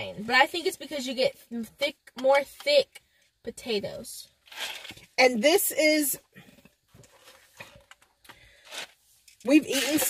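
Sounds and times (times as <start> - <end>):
food containers rustling: 6.5 - 10.0.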